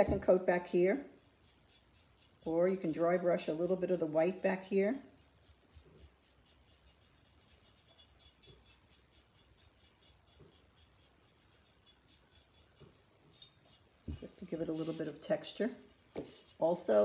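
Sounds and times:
paintbrush scratching: 0:00.0 - 0:15.6, 0:16.2 - 0:17.0.

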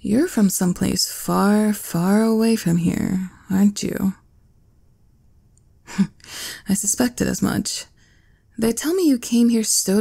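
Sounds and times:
woman speaking: 0:00.0 - 0:04.2, 0:05.9 - 0:07.9, 0:08.6 - 0:10.0
woman sighing: 0:05.8 - 0:06.7.

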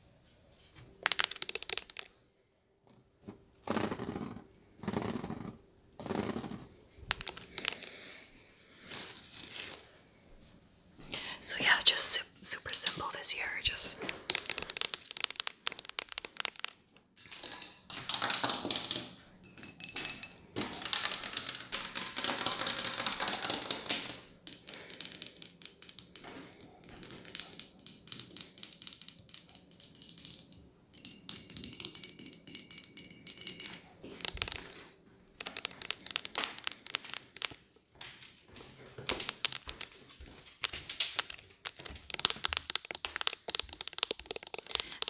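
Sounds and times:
fingernails tapping and scratching: 0:41.1 - 0:45.0.

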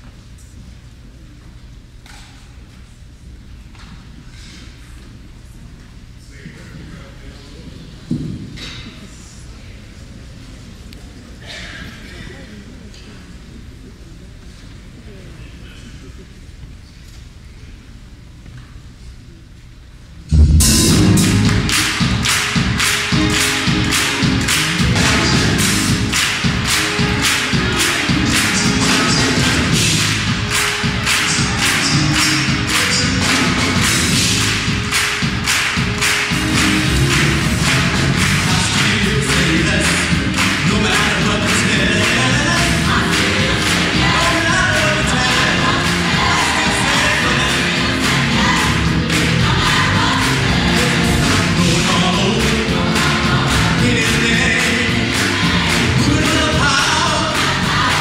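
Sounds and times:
drums keeping a steady beat: 0:20.3 - 0:58.0
gospel choir singing: 0:20.4 - 0:58.0
hand clapping: 0:21.2 - 0:58.0.

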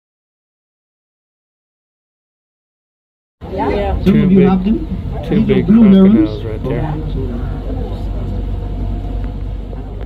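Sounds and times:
boat motor rumbling: 0:03.4 - 0:10.0.

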